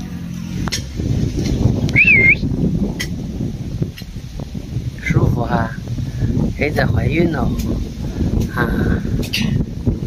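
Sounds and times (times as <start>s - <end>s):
low rumbling noise: 0.0s - 10.0s
high wavering whistle: 1.9s - 2.4s.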